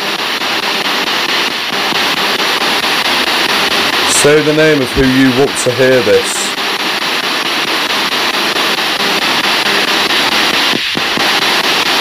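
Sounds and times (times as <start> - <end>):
radio static hiss: 0.0 - 12.0
rapid flicker of radio: 0.0 - 12.0.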